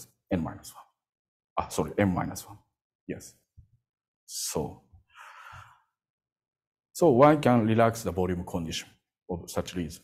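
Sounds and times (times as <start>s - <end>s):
man breathing out: 5.1s - 6.0s.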